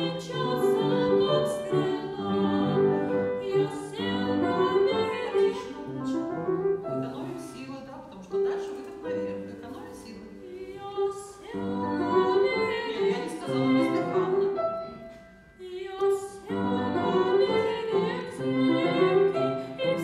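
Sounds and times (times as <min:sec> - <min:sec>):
grand piano accompaniment: 0:00.0 - 0:20.0.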